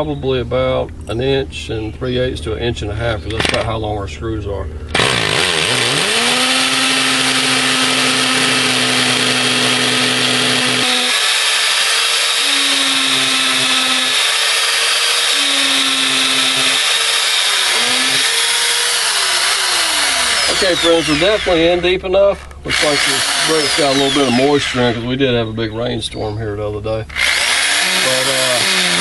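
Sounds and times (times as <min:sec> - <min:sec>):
hammer drill boring into brick: 0:04.9 - 0:21.6, 0:22.7 - 0:25.0, 0:27.1 - 0:29.0.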